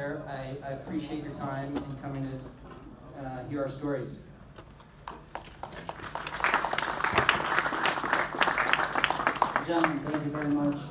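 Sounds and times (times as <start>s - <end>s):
audience applause: 5.0s - 10.6s.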